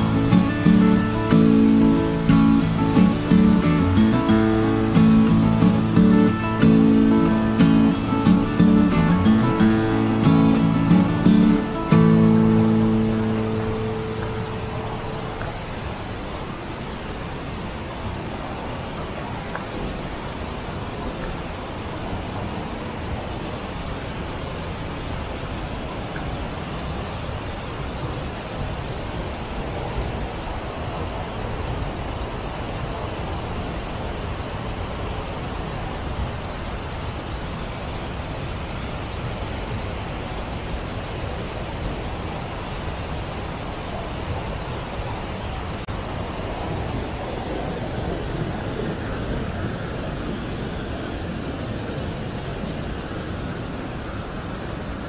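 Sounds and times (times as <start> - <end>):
river water rushing over a dam: 0.0 - 55.0.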